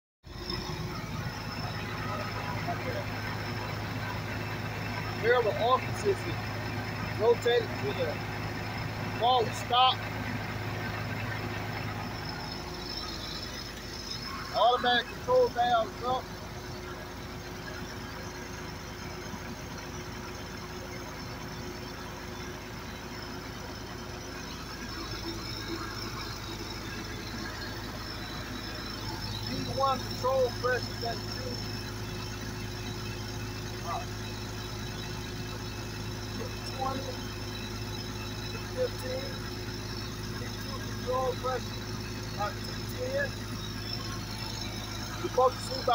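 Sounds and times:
diesel engine running: 0:00.2 - 0:45.9.

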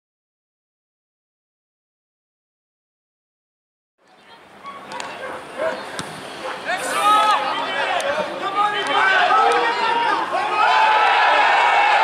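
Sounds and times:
outdoor sports ground ambience: 0:04.0 - 0:12.0.

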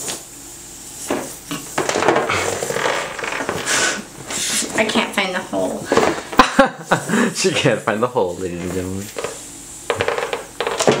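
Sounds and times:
air hissing from balloon: 0:00.0 - 0:11.0
balloon rubbing and squeaking: 0:02.1 - 0:04.8.

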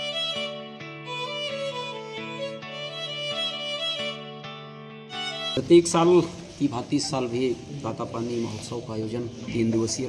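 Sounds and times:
instrumental melody of held notes: 0:00.0 - 0:07.6.

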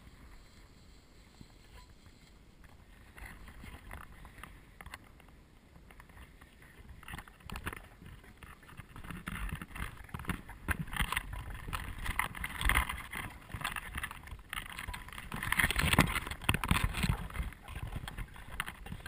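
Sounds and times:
person clambering over rocks: 0:02.6 - 0:19.0.

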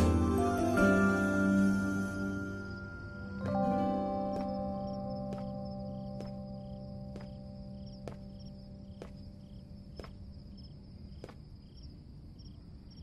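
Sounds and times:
held music notes: 0:00.0 - 0:08.9
crickets chirping: 0:00.0 - 0:13.0.

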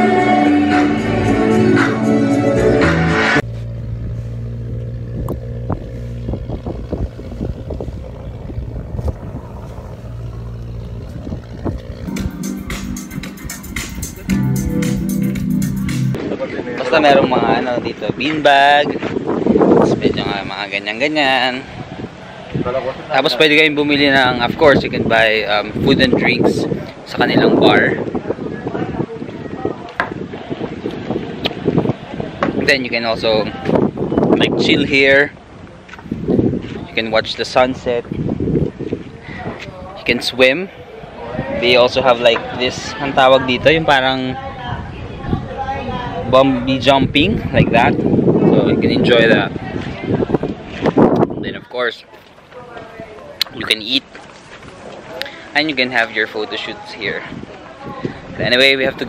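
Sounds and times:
choir music: 0:00.0 - 0:03.4, 0:12.1 - 0:16.2
wind buffeting microphone: 0:03.4 - 0:14.8, 0:16.1 - 0:55.2, 0:56.6 - 0:59.0
steady low hum: 0:03.4 - 0:16.2.

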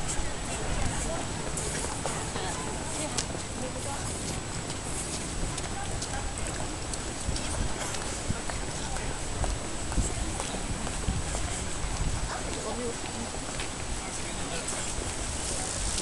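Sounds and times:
footsteps on pavement: 0:00.0 - 0:16.0.

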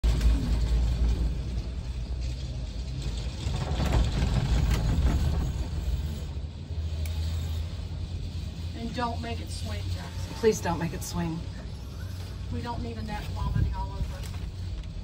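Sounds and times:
gondola cabin rumbling: 0:00.0 - 0:15.0.

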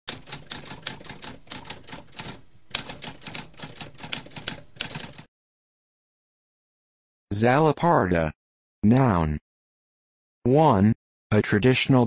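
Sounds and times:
typewriter keys clicking: 0:00.1 - 0:05.3.

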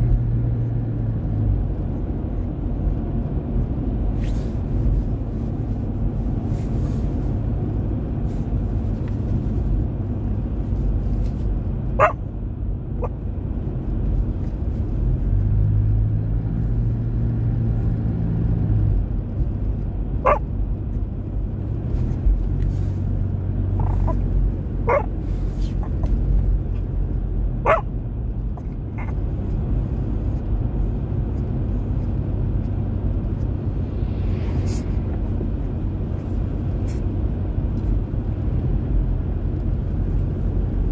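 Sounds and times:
car driving rumble inside cabin: 0:00.0 - 0:40.9
droning hum: 0:32.8 - 0:36.8.

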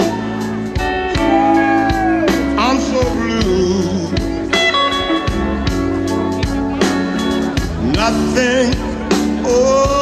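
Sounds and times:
bass guitar: 0:00.0 - 0:10.0
electric guitar: 0:00.0 - 0:10.0
steady drum beat: 0:00.0 - 0:10.0.

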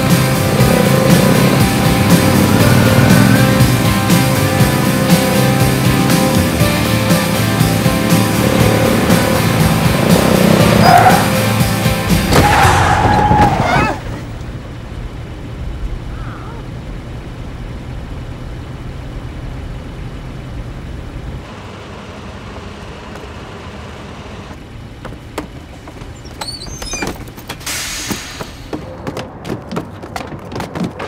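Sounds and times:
bus engine rumbling: 0:00.0 - 0:31.0
footsteps and knocks: 0:24.5 - 0:31.0.

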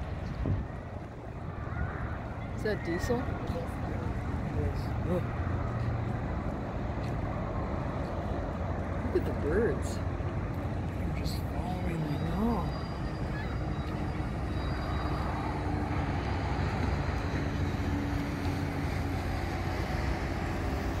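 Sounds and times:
ship engines rumbling: 0:00.0 - 0:21.0.

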